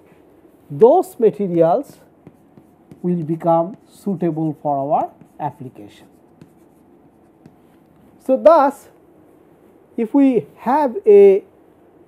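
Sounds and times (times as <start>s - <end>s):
chalk scratching on chalkboard: 0.8s - 8.3s.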